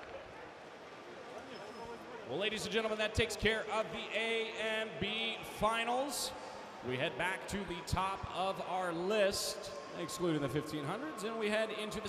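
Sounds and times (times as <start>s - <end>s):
low background hubbub: 0.0s - 12.0s.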